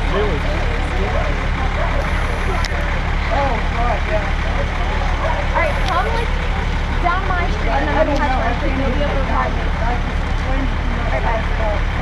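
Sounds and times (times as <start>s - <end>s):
faint voices: 0.0s - 12.0s
fire truck engine running: 0.0s - 12.0s.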